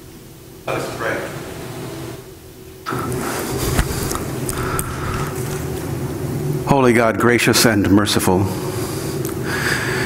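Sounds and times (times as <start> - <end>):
rustling handling noise: 3.2 - 6.0.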